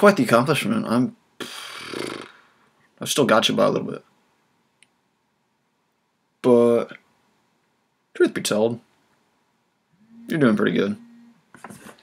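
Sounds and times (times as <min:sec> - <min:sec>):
man's creaky drawn-out uhh: 0:01.4 - 0:02.4.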